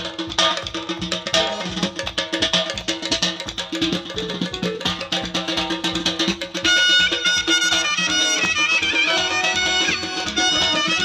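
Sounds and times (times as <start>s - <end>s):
folk dance music with drum: 0.0s - 11.0s.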